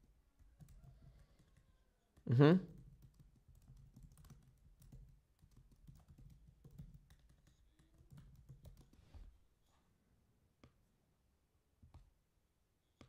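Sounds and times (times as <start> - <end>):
faint typing on keyboard: 0.0 - 9.4.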